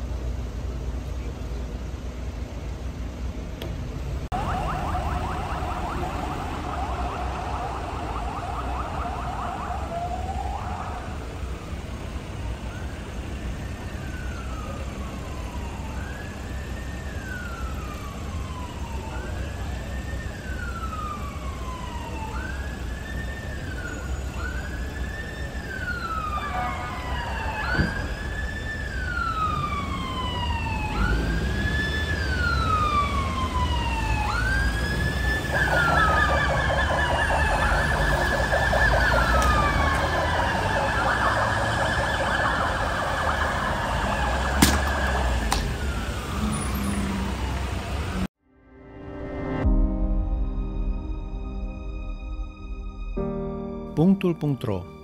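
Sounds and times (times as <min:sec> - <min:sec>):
low traffic rumble: 0:00.0 - 0:48.4
rapid warbling siren: 0:04.3 - 0:11.4, 0:12.5 - 0:47.0
police siren wailing: 0:04.3 - 0:48.3.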